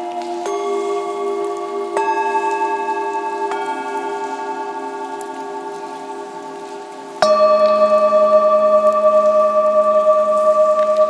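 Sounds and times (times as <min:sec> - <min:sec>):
singing bowls ringing: 0:00.0 - 0:11.0.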